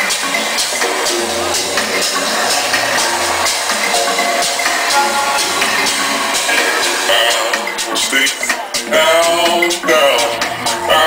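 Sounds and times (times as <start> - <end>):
house music through sound system: 0.0 - 11.0.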